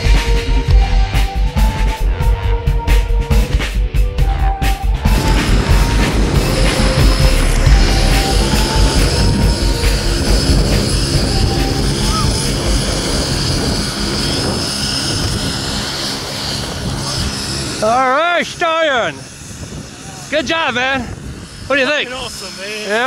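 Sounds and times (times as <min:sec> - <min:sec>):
heavy wind on microphone: 0:00.0 - 0:23.0.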